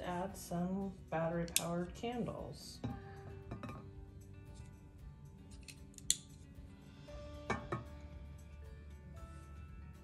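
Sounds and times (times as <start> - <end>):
soft background music: 0.0 - 10.0
candle knocking on glass tray: 7.4 - 7.9.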